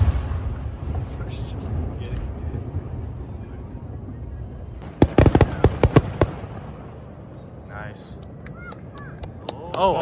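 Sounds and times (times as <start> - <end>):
fireworks low rumble: 0.0 - 10.0.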